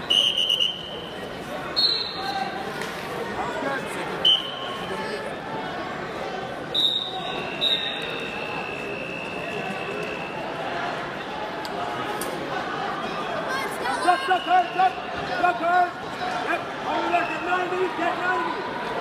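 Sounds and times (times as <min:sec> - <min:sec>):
faint long whistle tone: 0:00.0 - 0:01.1, 0:06.8 - 0:10.4
referee whistle blasts: 0:00.0 - 0:01.1, 0:01.8 - 0:02.3, 0:04.2 - 0:04.8, 0:06.7 - 0:10.4
crowd voices babbling: 0:00.0 - 0:19.0.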